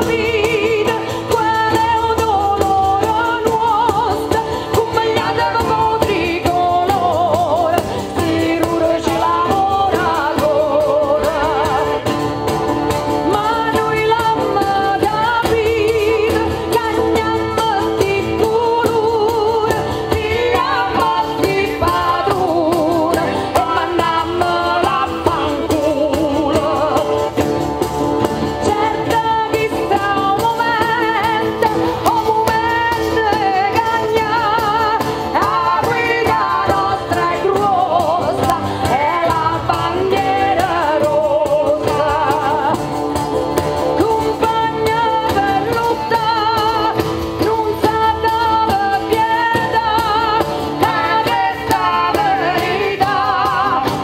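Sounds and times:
frame drum: 0.0 - 54.0
lute: 0.0 - 54.0
woman singing folk song: 0.0 - 54.0.

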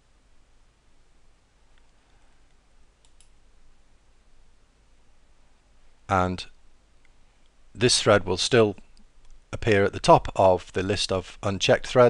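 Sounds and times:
faint hiss: 0.0 - 12.0
computer mouse clicks: 1.7 - 3.4.

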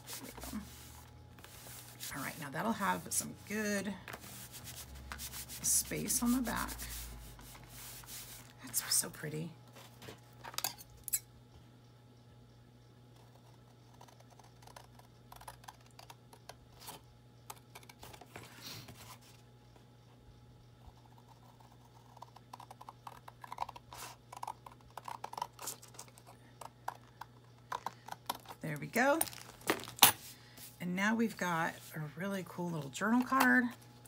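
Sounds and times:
steady low hum: 0.0 - 34.0
paper handling rustles: 29.1 - 30.8.

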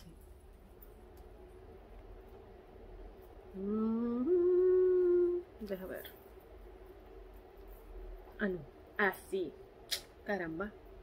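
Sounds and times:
woman humming: 3.5 - 5.8.

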